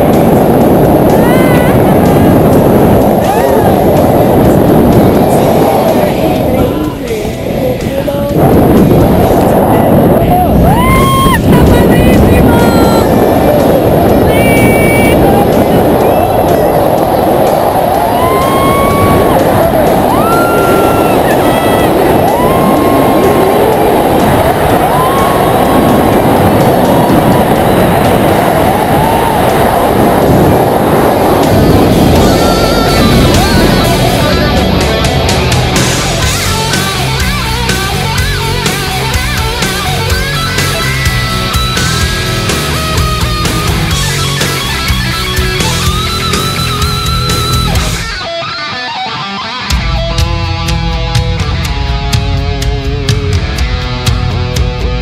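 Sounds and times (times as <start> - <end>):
wind rushing over microphone: 0.0 - 55.0
woman whooping: 10.4 - 11.7, 18.0 - 19.4, 20.1 - 23.4, 24.8 - 25.8.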